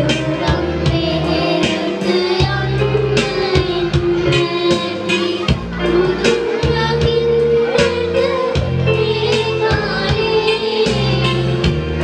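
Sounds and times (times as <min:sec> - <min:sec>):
children singing into microphones: 0:00.0 - 0:12.0
instrumental accompaniment: 0:00.0 - 0:12.0.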